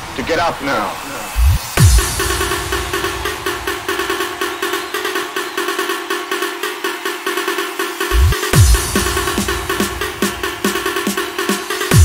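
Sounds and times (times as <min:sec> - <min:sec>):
electronic dance riff pulsing: 0:00.1 - 0:12.0.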